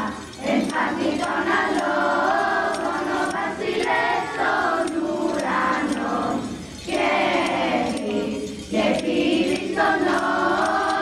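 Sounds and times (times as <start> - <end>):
children's choir singing carols: 0.0 - 11.0
triangles tinkling: 0.0 - 11.0.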